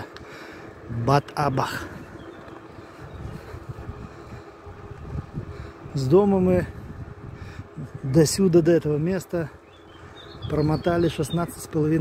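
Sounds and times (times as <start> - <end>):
tyres rumbling on paved road: 0.0 - 12.0
wind rushing over microphone: 0.7 - 12.0.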